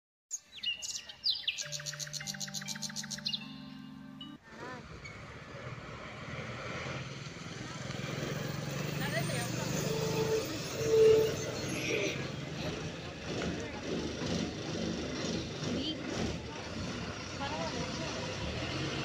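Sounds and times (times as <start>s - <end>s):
bus driving past: 1.7s - 19.0s.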